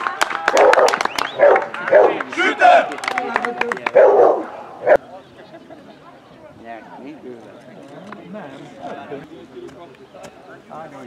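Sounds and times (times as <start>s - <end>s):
spectators clapping: 0.0s - 4.0s
dog barking loudly: 0.5s - 2.3s, 3.9s - 5.0s.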